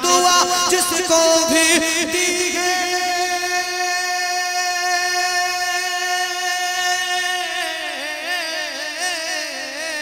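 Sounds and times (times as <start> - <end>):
man singing melisma: 0.0 - 10.0.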